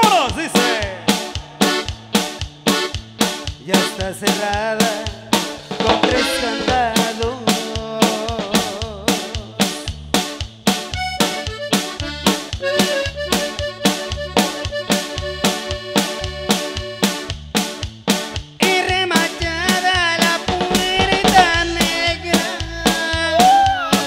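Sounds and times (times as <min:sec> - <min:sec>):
accordion melody: 0:00.0 - 0:07.6, 0:10.1 - 0:24.0
steady band beat: 0:00.0 - 0:24.0.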